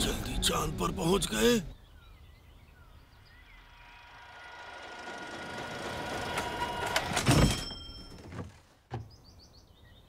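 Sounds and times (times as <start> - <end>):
lift platform mechanism whirring: 3.8 - 7.9.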